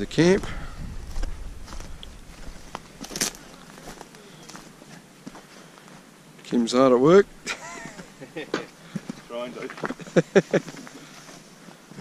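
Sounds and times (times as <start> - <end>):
footsteps on stony dirt and leaves: 0.0 - 6.2, 7.3 - 12.0.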